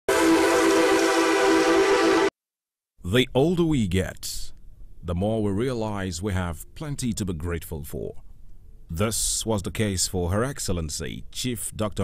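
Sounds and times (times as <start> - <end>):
held tone rich in overtones: 0.1 - 2.3.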